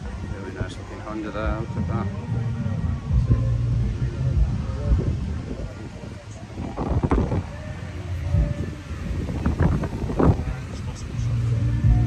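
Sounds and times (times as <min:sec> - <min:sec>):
low dense rumble: 0:00.0 - 0:12.0
people talking: 0:00.0 - 0:12.0.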